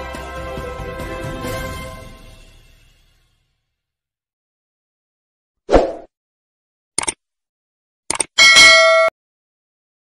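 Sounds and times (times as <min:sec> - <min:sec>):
notification bell ding: 0:08.4 - 0:09.1.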